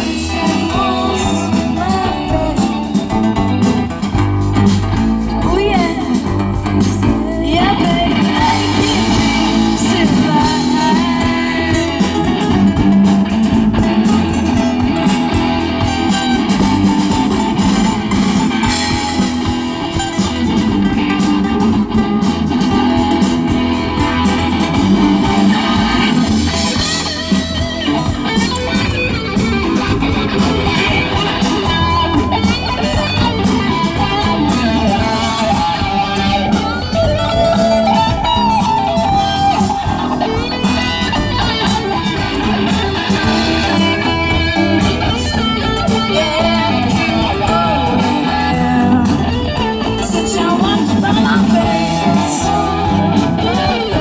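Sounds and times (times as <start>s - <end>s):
bass guitar: 0.0s - 54.0s
drums: 0.0s - 54.0s
electric guitar: 0.0s - 54.0s
strummed acoustic guitar: 0.0s - 54.0s.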